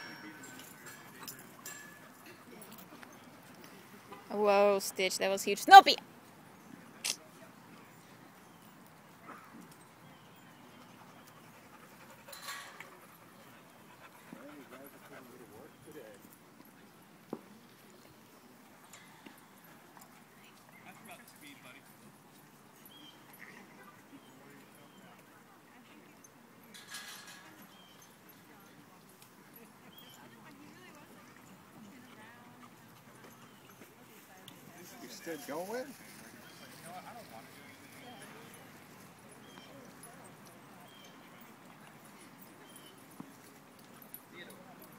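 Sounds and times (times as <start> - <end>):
dogs playing: 0.0 - 4.1, 7.6 - 26.4, 27.3 - 44.9
distant voices chatting: 0.0 - 5.8
low outdoor background: 0.0 - 44.9.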